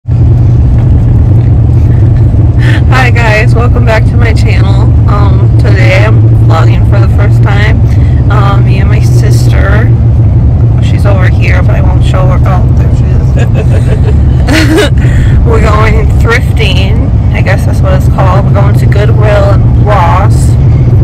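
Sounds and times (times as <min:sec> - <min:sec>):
car driving rumble: 0:00.0 - 0:21.0.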